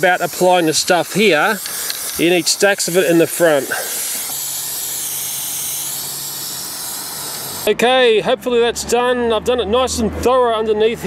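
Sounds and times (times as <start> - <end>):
aerosol can spraying hiss: 0.0 - 7.7.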